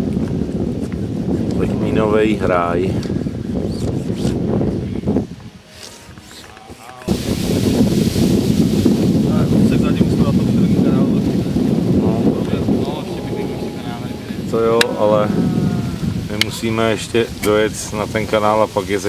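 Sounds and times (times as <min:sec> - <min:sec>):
wind buffeting microphone: 0:00.0 - 0:06.3, 0:07.0 - 0:19.0
faint voices: 0:09.3 - 0:17.8.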